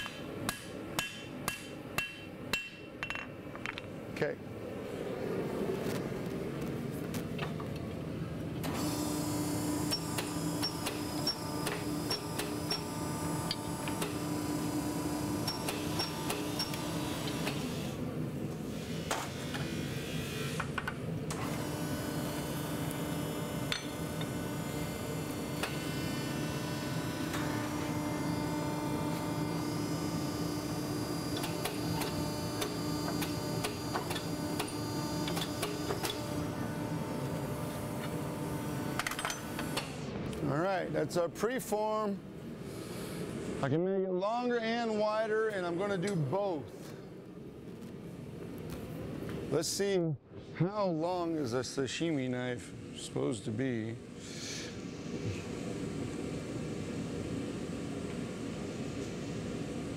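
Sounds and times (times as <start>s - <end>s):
hydraulic press hum: 8.6s - 40.2s.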